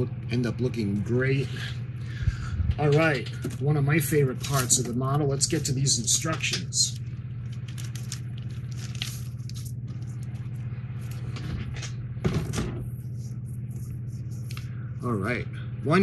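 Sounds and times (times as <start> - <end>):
low electrical hum: 0.0 - 16.0
paper rustling: 4.3 - 11.5.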